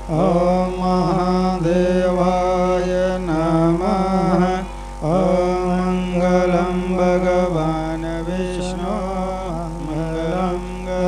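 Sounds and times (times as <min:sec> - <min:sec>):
person chanting a mantra: 0:00.0 - 0:11.0.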